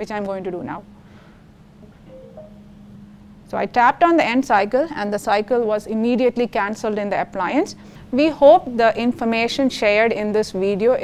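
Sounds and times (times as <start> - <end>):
low steady hum: 0.0 - 11.0
faint electronic oven chime: 2.1 - 3.1.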